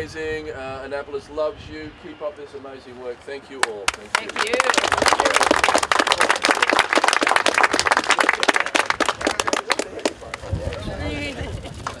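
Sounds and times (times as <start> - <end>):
crowd applauding: 3.6 - 10.6.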